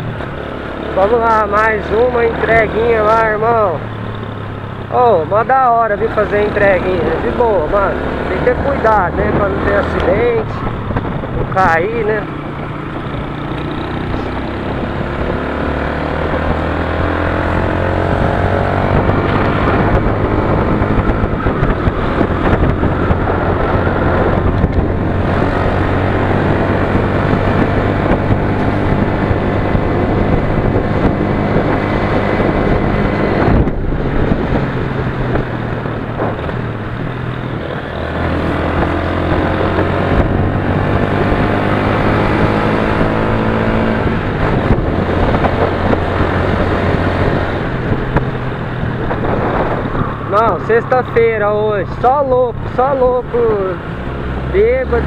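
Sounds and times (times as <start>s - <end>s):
motorcycle engine accelerating: 0.0s - 55.0s.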